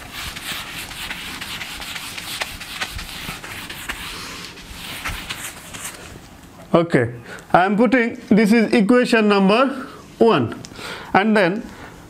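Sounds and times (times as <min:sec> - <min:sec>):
eraser rubbing on whiteboard: 0:00.0 - 0:06.1.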